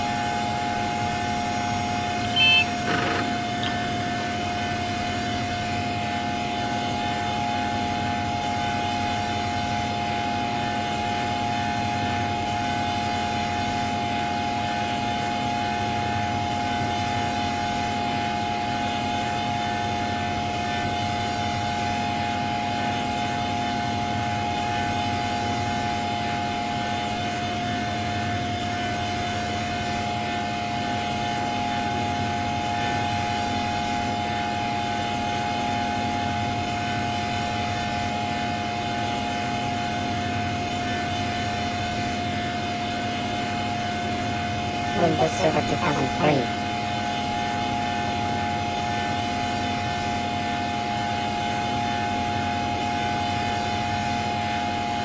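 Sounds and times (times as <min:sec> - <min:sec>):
distorted electronic drone: 0:01.7 - 0:04.2, 0:44.9 - 0:46.6.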